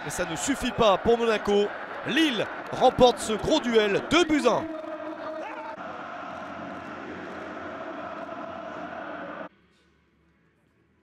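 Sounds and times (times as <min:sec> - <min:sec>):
stadium ambience: 0:00.0 - 0:11.0.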